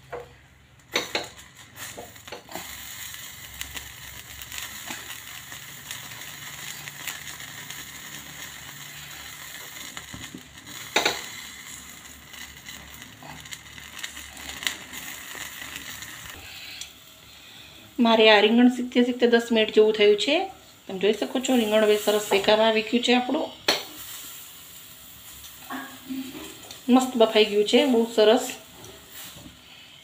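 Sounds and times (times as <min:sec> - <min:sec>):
gas burner flame hissing: 0:00.0 - 0:30.0
skin crackling and sizzling: 0:00.0 - 0:30.0.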